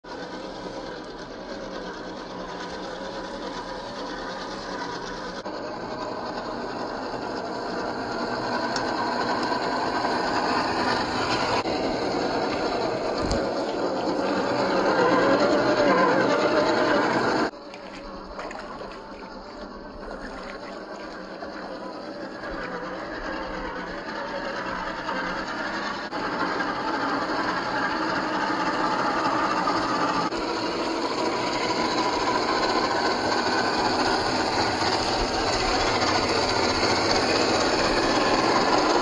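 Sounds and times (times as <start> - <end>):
rc car electric motor whining: 0.1 - 39.0.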